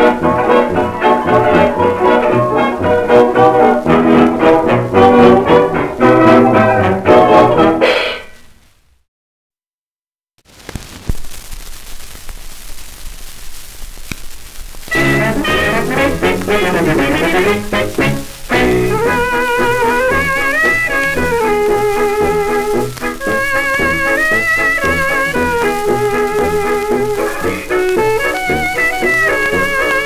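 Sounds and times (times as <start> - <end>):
dance band on old record: 0.0 - 8.4, 10.5 - 30.0
record surface hiss: 0.0 - 9.1, 10.4 - 30.0
record crackle clicks: 10.4 - 30.0.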